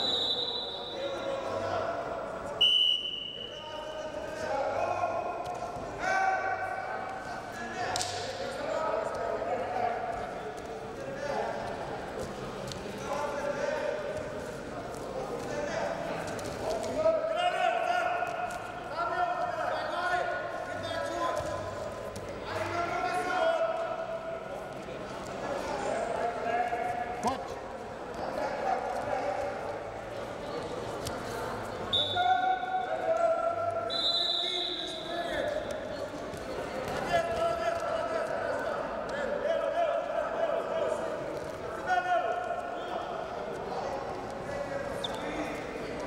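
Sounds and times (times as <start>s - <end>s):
referee's whistle: 0.0s - 1.2s, 2.6s - 3.8s, 31.9s - 32.8s, 33.8s - 35.1s.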